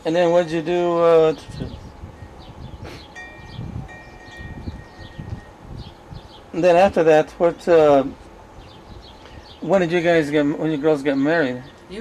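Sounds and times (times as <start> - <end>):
wind rumble on microphone: 1.0 - 7.1, 8.5 - 9.6
wind chime ringing: 3.1 - 5.6.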